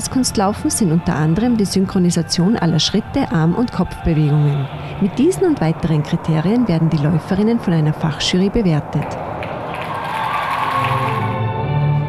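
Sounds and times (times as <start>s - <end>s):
music: 0.0s - 6.3s, 10.4s - 12.0s
crowd applauding and cheering: 9.0s - 11.7s.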